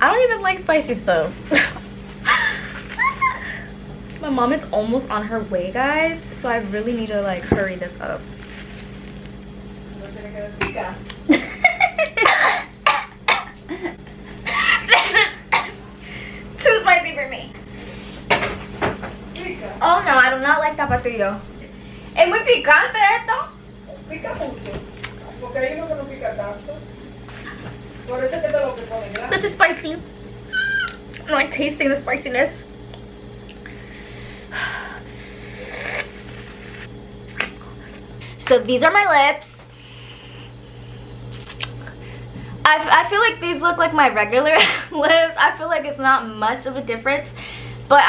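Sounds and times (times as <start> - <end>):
woman coughing: 12.2 - 13.6, 14.4 - 15.8
woman hissing and breathing sharply: 34.1 - 36.1.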